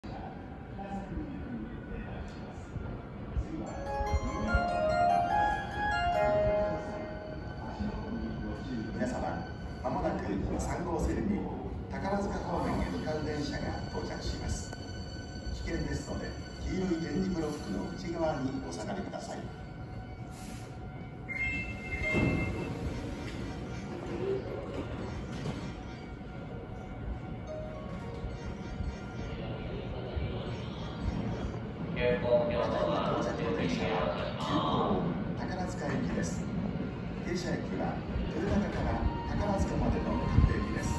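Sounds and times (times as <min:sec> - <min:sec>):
railway platform ambience: 0:00.0 - 0:40.9
electronic station platform melody: 0:03.7 - 0:10.6, 0:19.4 - 0:31.9.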